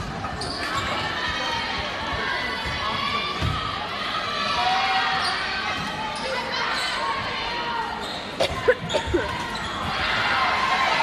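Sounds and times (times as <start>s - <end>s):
crowd chatter: 0.0s - 11.0s
sneaker squeaks: 0.2s - 1.1s, 5.1s - 7.2s, 7.9s - 10.0s.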